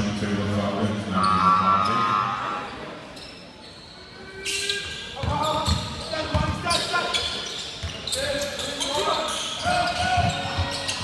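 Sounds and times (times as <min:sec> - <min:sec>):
crowd and court noise: 0:00.0 - 0:11.0.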